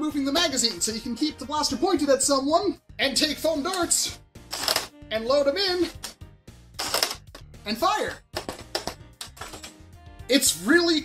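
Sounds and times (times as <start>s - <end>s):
background music: 0.0s - 11.0s
toy blaster clicks and knocks: 6.8s - 7.4s.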